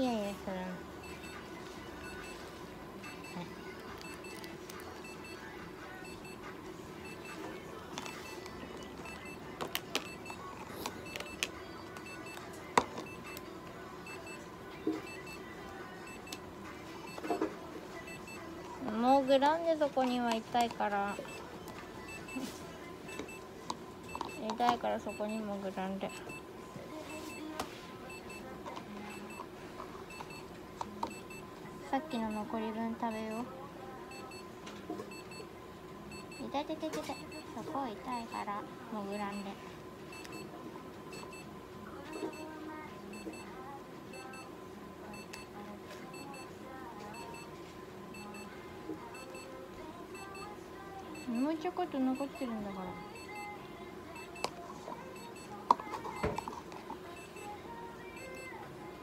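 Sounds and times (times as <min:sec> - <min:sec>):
faint electronic beeps: 0:01.0 - 0:07.4, 0:08.0 - 0:16.4, 0:17.0 - 0:19.0, 0:21.0 - 0:23.5, 0:24.1 - 0:28.5, 0:29.1 - 0:29.5, 0:30.1 - 0:31.5, 0:39.1 - 0:40.5, 0:41.1 - 0:41.5, 0:42.1 - 0:43.5, 0:44.1 - 0:44.5, 0:45.1 - 0:46.5, 0:48.1 - 0:48.5, 0:49.1 - 0:49.5, 0:51.2 - 0:53.6, 0:57.2 - 0:58.6.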